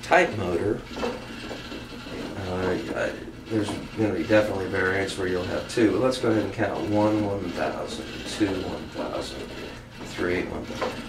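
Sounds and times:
motor-driven shaft rubbing: 0.0s - 11.0s.

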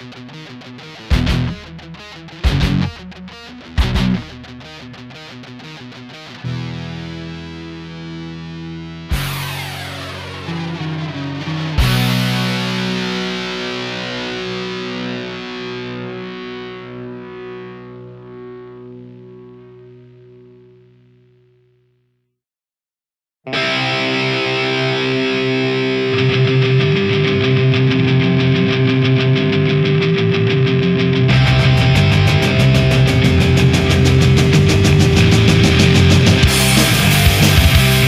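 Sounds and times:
punk rock distorted guitar: 0.0s - 21.6s, 23.5s - 38.0s.

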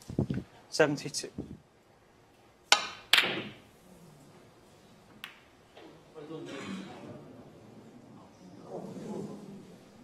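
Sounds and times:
snooker balls cracking together: 2.7s - 3.7s.

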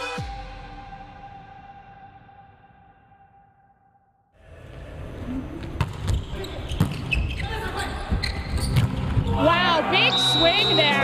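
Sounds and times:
crowd noise: 4.4s - 11.0s
volleyball bouncing on court floor: 5.6s - 7.4s, 8.0s - 9.6s.

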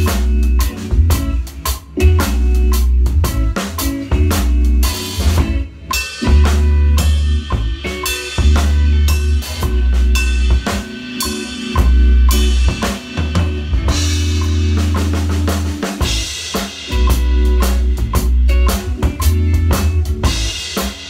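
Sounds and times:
low bass notes: 0.0s - 20.7s
drum kit groove: 0.0s - 21.0s.

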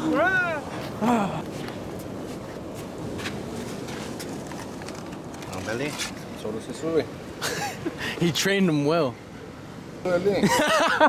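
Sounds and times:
beach background rush: 0.0s - 11.0s.

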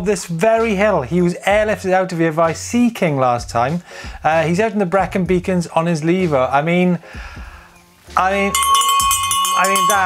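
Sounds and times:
man speaking: 8.2s - 8.6s, 9.5s - 10.0s
bell ringing: 8.5s - 10.0s.

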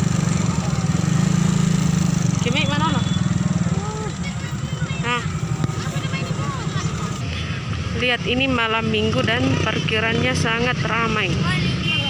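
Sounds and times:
engine running: 0.0s - 11.9s
people talking: 2.4s - 12.0s.

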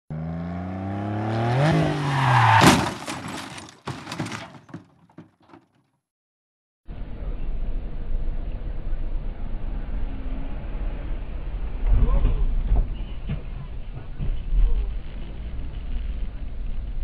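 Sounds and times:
road and engine rumble: 0.1s - 5.7s, 6.9s - 17.0s.

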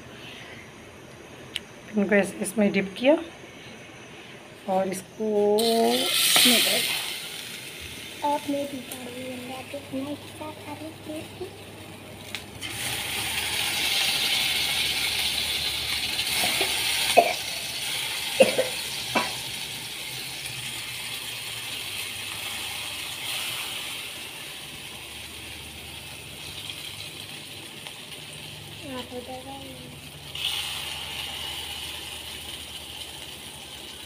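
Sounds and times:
steady hiss: 5.4s - 34.0s.

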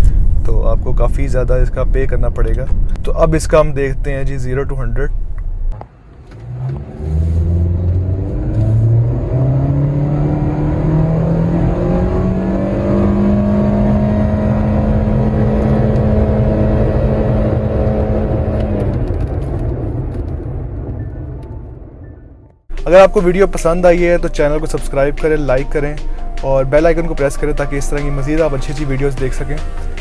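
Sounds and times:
car engine accelerating hard: 5.8s - 20.2s.

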